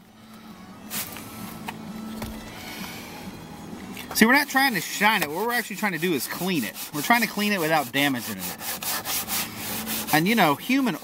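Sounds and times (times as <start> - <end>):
low hum: 0.0 - 4.2
spray bottle spraying: 0.9 - 1.2.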